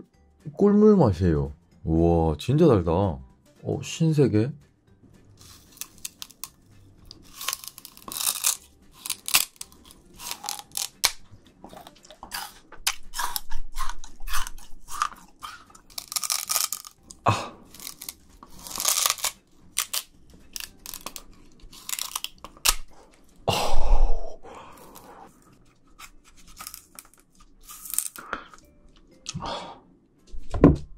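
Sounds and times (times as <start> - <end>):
chewing crunchy sugar cane: 5.4 - 23.4, 24.7 - 28.7.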